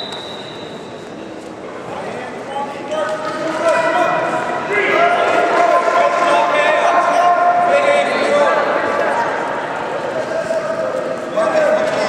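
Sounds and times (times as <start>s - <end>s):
people shouting in echoing hall: 3.4s - 12.0s.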